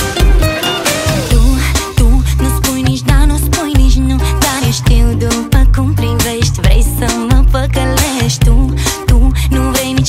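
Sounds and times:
heavy pulsing bass beat: 0:00.0 - 0:10.0
woman singing: 0:01.2 - 0:10.0.

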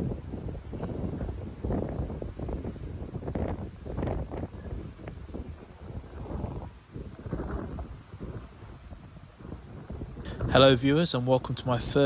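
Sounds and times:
sea water rushing along hull: 0:00.0 - 0:12.0
wind buffeting microphone: 0:00.0 - 0:12.0.

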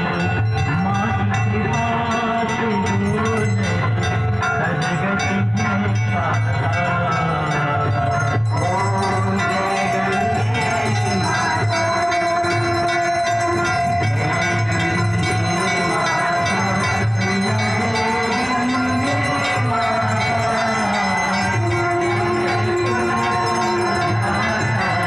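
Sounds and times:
bells ringing: 0:00.0 - 0:25.0
devotional music: 0:00.0 - 0:25.0.

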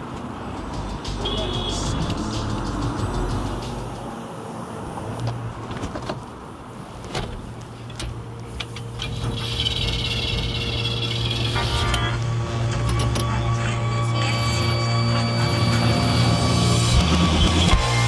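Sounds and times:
street and car noise: 0:00.0 - 0:18.0
music: 0:00.6 - 0:04.0, 0:11.1 - 0:18.0.

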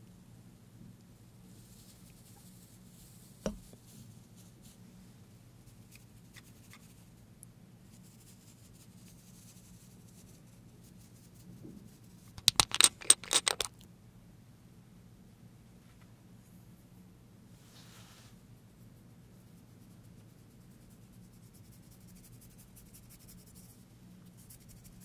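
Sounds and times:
glass jar clicks: 0:12.4 - 0:13.8.

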